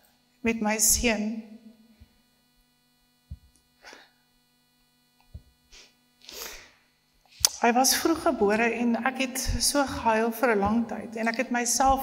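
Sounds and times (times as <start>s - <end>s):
electrical mains hum: 0.0s - 12.0s.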